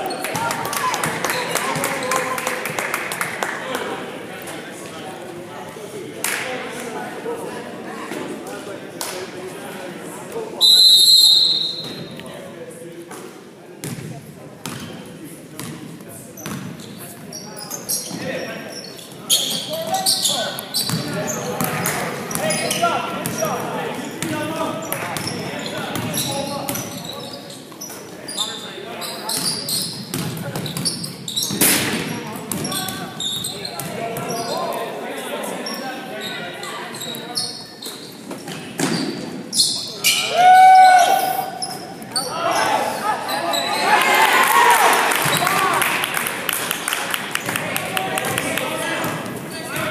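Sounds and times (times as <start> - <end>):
players' voices: 0.0 - 49.9
sneakers squeaking: 11.2 - 12.2, 13.8 - 34.9, 35.5 - 44.0.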